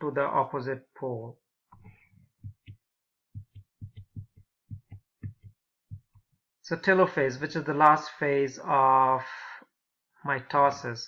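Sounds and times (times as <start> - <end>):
soft low thumps: 1.8 - 6.4.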